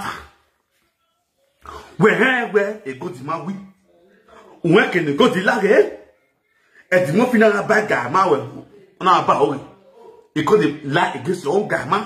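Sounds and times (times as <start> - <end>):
man speaking: 0.0 - 0.4, 1.7 - 6.1, 6.9 - 12.0.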